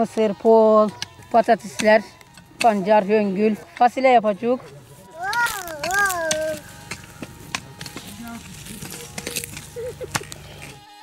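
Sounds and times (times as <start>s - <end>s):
rake scraping grass and soil: 4.8s - 11.0s
small child's voice: 5.1s - 6.6s.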